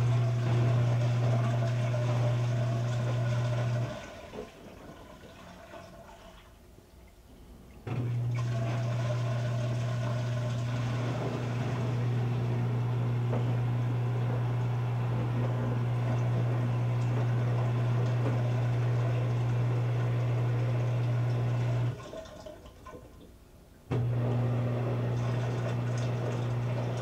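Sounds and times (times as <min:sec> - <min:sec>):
washing machine motor hum: 0:00.0 - 0:06.6, 0:07.5 - 0:23.2, 0:23.8 - 0:27.0.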